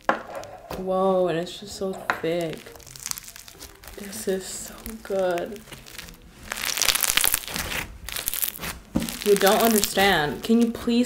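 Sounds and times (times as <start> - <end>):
crunchy slime crackling: 0.0 - 11.0.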